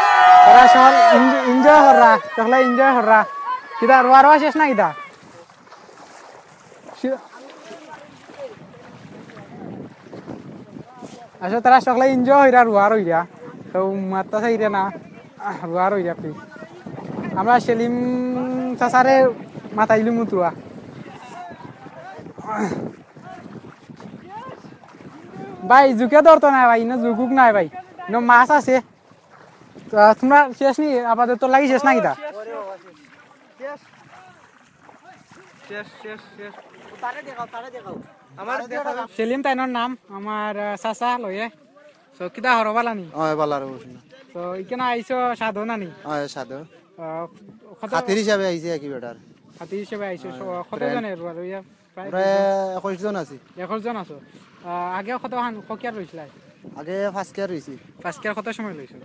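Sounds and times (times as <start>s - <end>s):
water sloshing and splashing: 0.0s - 59.0s
wind noise on microphone: 8.1s - 30.6s, 36.8s - 38.4s, 47.2s - 51.1s, 55.7s - 59.0s.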